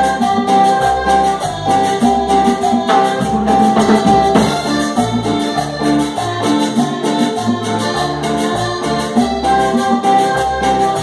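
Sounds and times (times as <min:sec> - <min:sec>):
accordion melody: 0:00.0 - 0:11.0
live band playing dance music: 0:00.0 - 0:11.0.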